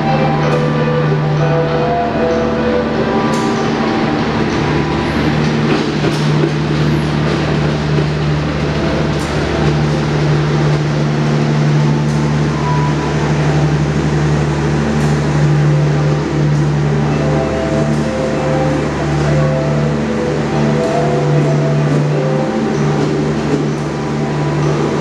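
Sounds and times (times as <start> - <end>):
diesel engine drone: 0.0 - 25.0
train carriages rumbling: 0.0 - 25.0.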